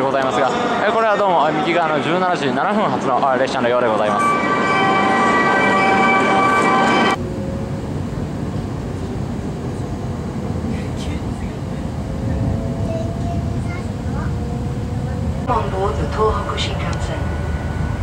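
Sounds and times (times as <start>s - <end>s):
train running rumble: 0.0s - 18.0s
multi-tone electronic signal: 4.1s - 7.6s.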